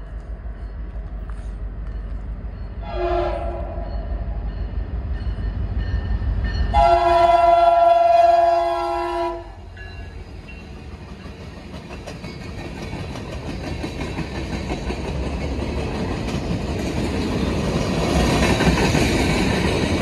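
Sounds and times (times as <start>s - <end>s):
locomotive horn chord: 2.8s - 3.8s, 6.7s - 9.6s
train wheels clattering on rails: 9.8s - 20.0s.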